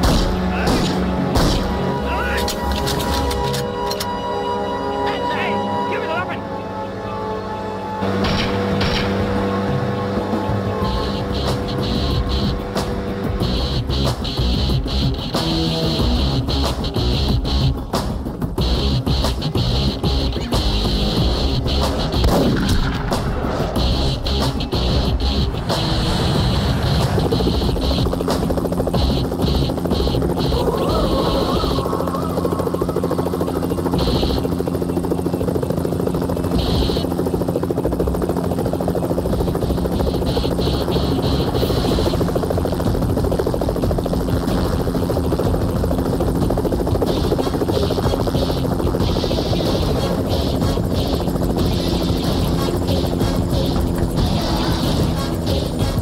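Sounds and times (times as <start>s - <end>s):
helicopter engine and rotor drone: 0.0s - 56.0s.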